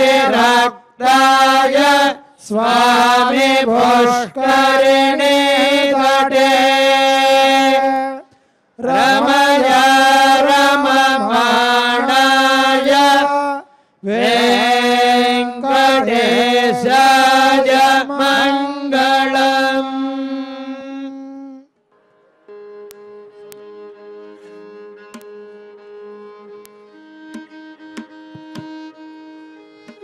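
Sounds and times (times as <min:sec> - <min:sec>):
devotional chanting: 0:00.0 - 0:21.7.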